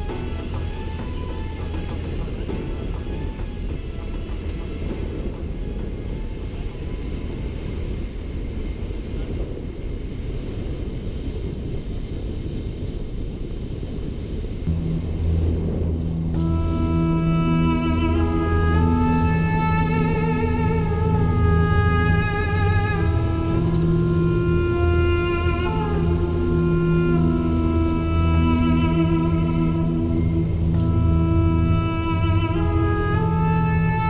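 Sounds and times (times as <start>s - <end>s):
background music: 0.0s - 9.5s, 14.7s - 34.0s
vehicle rumble on sand: 14.6s - 34.0s.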